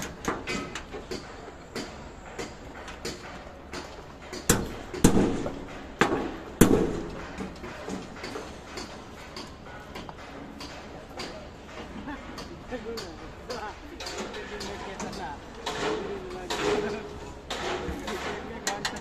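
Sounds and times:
hard objects knocking and clanking: 0.0 - 19.0.

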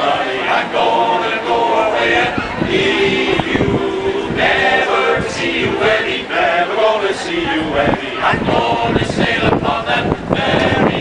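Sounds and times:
men's chorus singing a cappella: 0.0 - 11.0.

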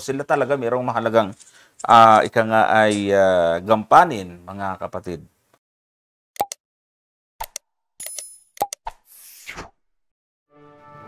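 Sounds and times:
short clicks and pops: 6.4 - 6.6, 7.4 - 9.0.

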